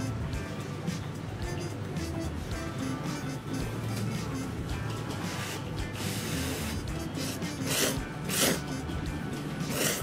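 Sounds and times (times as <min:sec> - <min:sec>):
person slurping noodles: 0:05.3 - 0:08.8, 0:09.6 - 0:10.0.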